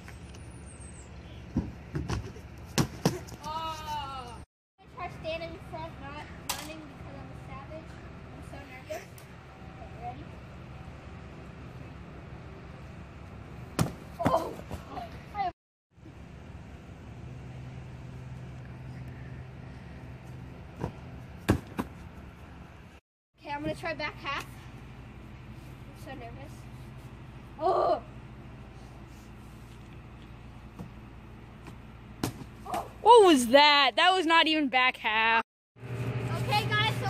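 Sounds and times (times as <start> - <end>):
steady low hum: 1.0 - 33.1
thumps landing on gym mats: 13.8 - 14.9, 32.2 - 32.9
children talking: 36.3 - 37.0.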